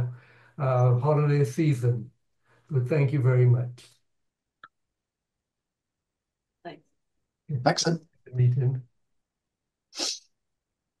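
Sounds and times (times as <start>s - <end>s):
person hissing: 10.0s - 10.2s.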